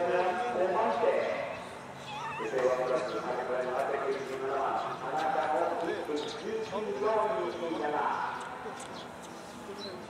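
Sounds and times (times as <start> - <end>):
man announcing over loudspeaker: 0.0 - 1.7, 2.5 - 8.7.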